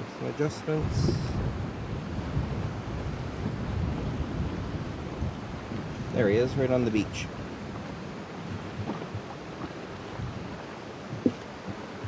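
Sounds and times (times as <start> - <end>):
water lapping around boat: 0.0 - 12.0
wind buffeting microphone: 0.7 - 12.0.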